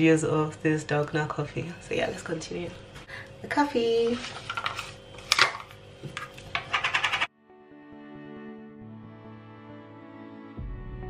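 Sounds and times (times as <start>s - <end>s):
plastic lid opening: 4.4s - 7.2s
glass jar clicks and scrapes: 6.2s - 7.3s
soft instrumental music: 7.4s - 11.0s.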